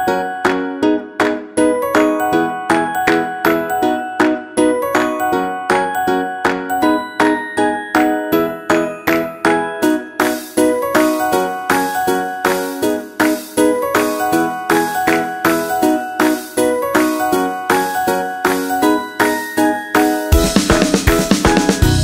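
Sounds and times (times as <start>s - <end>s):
bell-like music melody: 0.0s - 22.0s.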